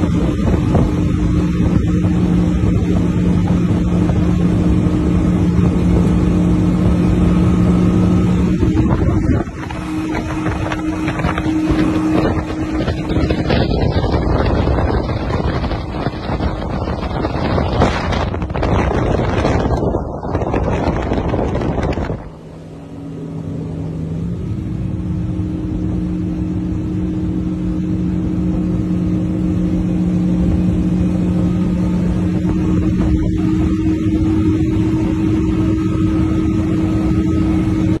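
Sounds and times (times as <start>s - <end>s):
outboard motor droning: 0.0s - 38.0s
wind noise: 0.0s - 38.0s.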